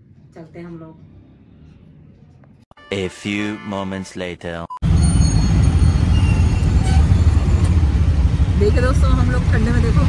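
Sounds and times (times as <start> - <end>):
auto-rickshaw rumble: 4.8 - 10.0.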